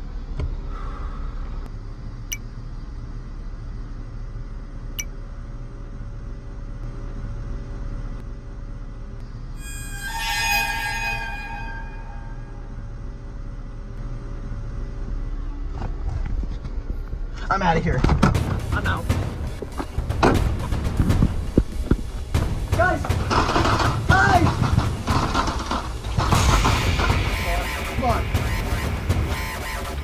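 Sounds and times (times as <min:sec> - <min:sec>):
low steady drone: 0:00.0 - 0:15.9, 0:18.4 - 0:30.0
shrill many-toned stinger: 0:09.6 - 0:13.2, 0:26.4 - 0:30.0.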